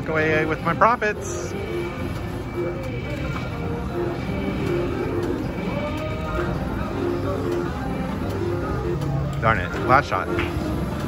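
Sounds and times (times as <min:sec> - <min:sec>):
crowd chatter: 0:00.0 - 0:11.0
slot machine reels spinning: 0:00.0 - 0:11.0.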